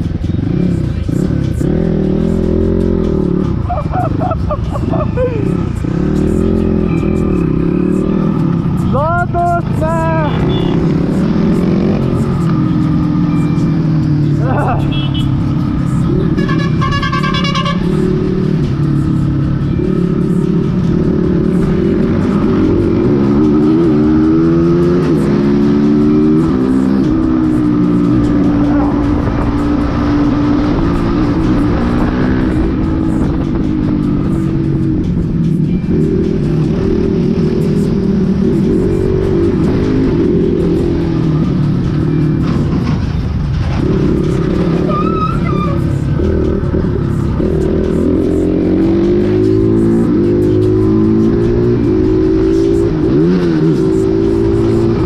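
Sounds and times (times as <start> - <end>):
motorcycle engine running: 0.0 - 55.0
motorcycle horn: 10.2 - 11.0, 14.8 - 15.4, 16.3 - 18.1.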